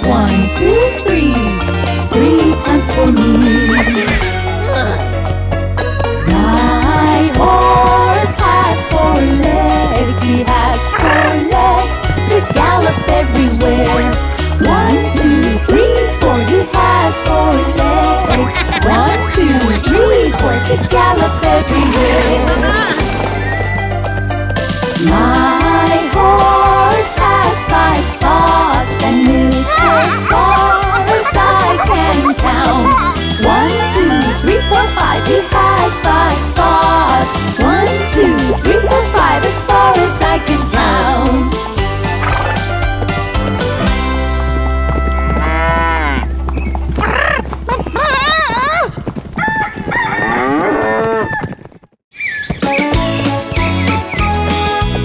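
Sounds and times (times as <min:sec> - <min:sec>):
children's song backing music: 0:00.0 - 0:04.5, 0:06.0 - 0:23.9, 0:24.8 - 0:42.7
cartoon animal calls: 0:10.9 - 0:11.5, 0:47.0 - 0:48.9
horse whinny sound effect: 0:11.0 - 0:11.5, 0:49.9 - 0:51.5.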